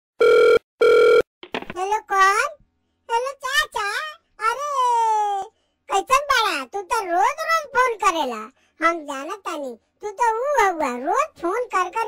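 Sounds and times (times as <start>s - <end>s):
telephone ringback tone: 0.2s - 1.2s
high-pitched voice speaking: 1.7s - 12.0s.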